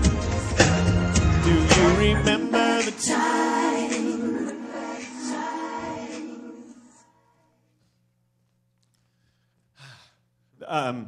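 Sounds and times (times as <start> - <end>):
man sighing: 9.8 - 10.2.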